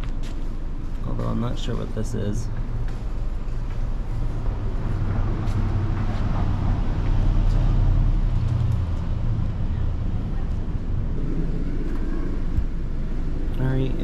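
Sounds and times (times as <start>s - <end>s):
vehicle engine rumbling past: 0.0s - 14.0s.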